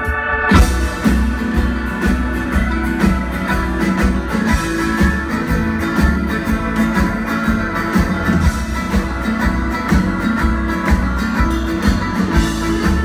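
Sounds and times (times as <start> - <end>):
live folk-rock band playing: 0.0 - 13.0
steady drum beat: 0.0 - 13.0.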